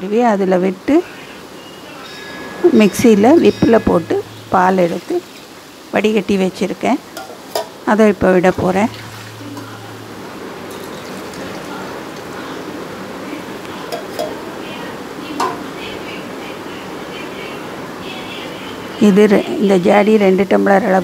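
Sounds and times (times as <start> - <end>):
food sizzling in oil: 0.9 - 15.8.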